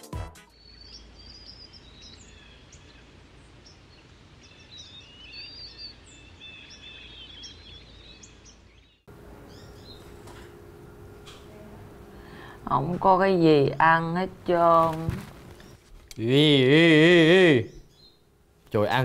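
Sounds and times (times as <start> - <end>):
birds chirping: 0.5 - 19.0
steady background hum: 0.6 - 19.0.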